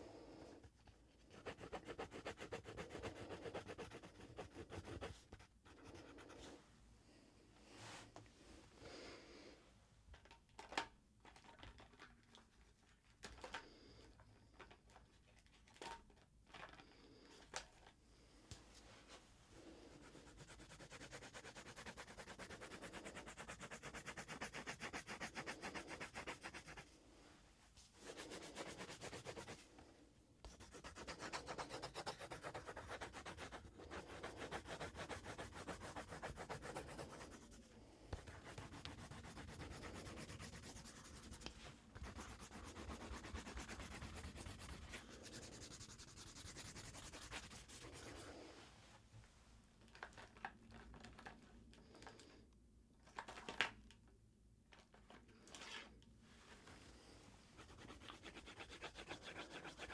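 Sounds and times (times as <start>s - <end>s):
pencil scratching on paper: 1.3s - 6.5s, 20.0s - 26.8s, 30.5s - 37.5s, 38.2s - 48.2s, 57.6s - 59.9s.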